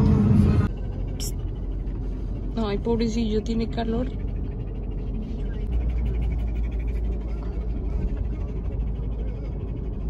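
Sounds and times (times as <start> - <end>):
car road noise rumble: 0.0 - 10.0
dog panting rapidly: 0.7 - 10.0.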